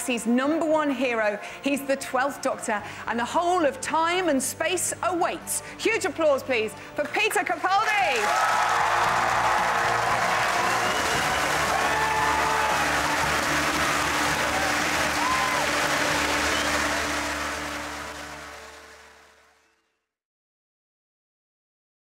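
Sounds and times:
music: 0:00.0 - 0:20.2
audience applauding: 0:08.1 - 0:19.7
people whooping: 0:08.2 - 0:17.8.

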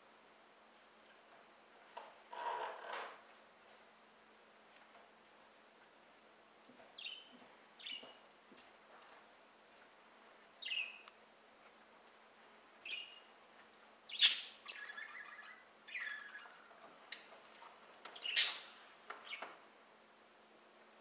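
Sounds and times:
songbirds chirping: 0:05.5 - 0:20.3.

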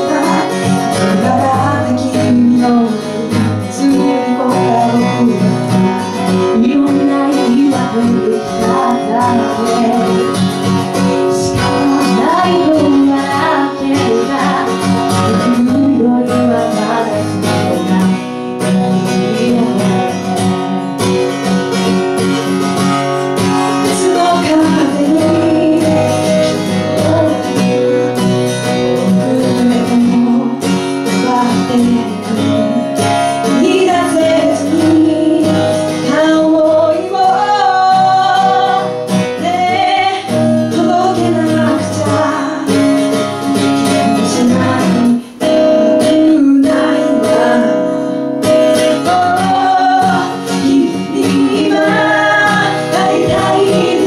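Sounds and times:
woman singing into microphone: 0:00.0 - 0:21.0, 0:22.6 - 0:54.0
acoustic guitar: 0:00.0 - 0:54.0.

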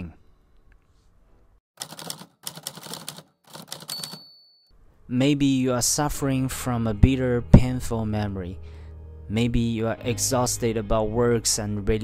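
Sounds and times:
typewriter keys clattering: 0:01.8 - 0:04.3
typewriter bell dinging: 0:02.9 - 0:04.7.

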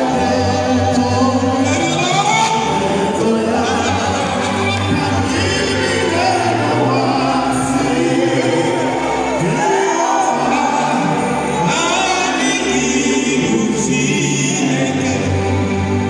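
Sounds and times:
choir singing: 0:00.0 - 0:16.0
voices singing with vibrato: 0:00.0 - 0:16.0.

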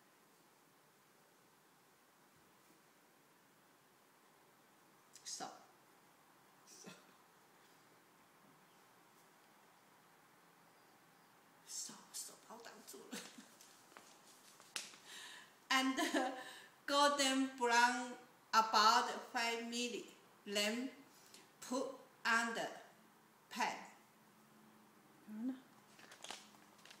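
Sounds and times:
faint vocal sound: 0:25.2 - 0:25.7
woman murmuring: 0:25.3 - 0:25.7.

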